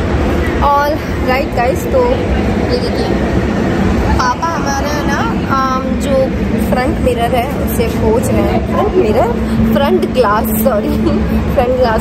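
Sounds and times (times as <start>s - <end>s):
road vehicle rumble: 0.0s - 12.0s.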